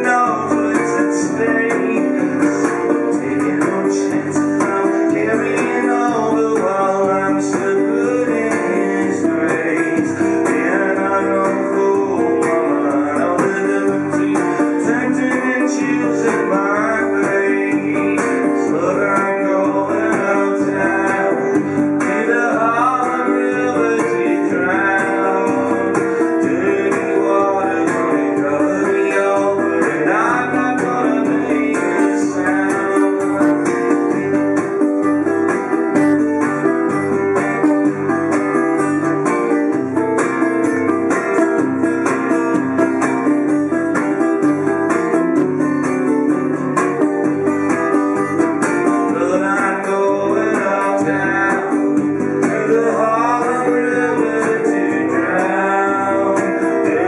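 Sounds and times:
acoustic guitar playing blues: 0.0s - 57.0s.

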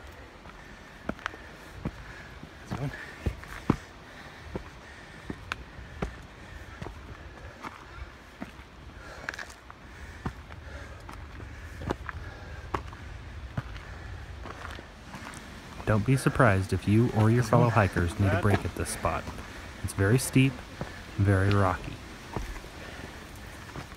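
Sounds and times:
footsteps on rocky trail: 0.0s - 23.9s.

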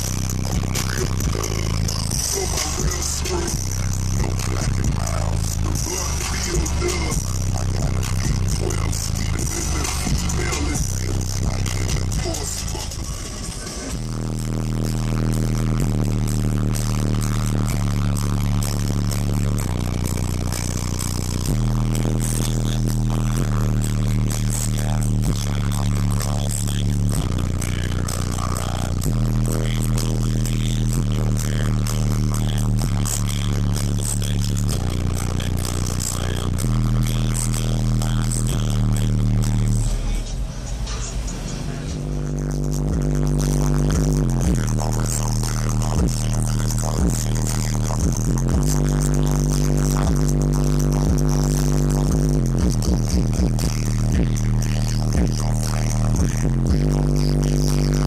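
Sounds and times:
bass-heavy music from car speakers: 0.0s - 58.0s.

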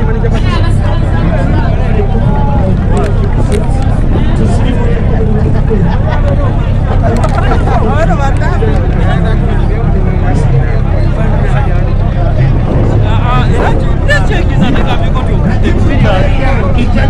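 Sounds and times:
crowd chattering: 0.0s - 17.0s.

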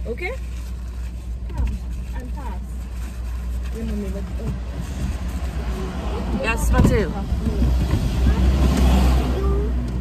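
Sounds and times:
car engine rumble in cabin: 0.0s - 10.0s.

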